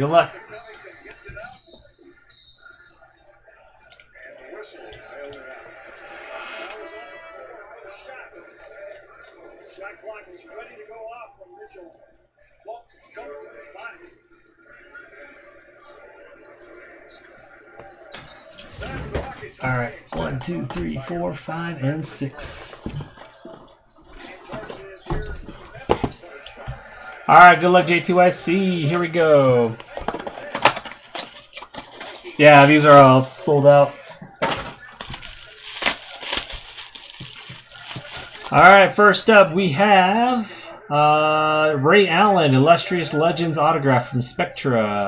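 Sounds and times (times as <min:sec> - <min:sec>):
faint background speech: 0:00.0 - 0:33.2.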